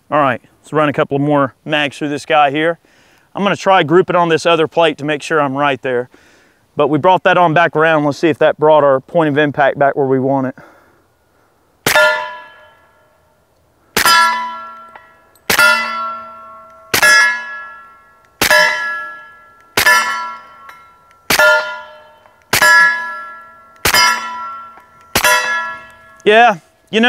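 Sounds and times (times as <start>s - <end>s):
steel plate target ringing: 11.8s - 13.2s, 14.0s - 27.0s
suppressed pistol shots: 22.5s - 26.0s.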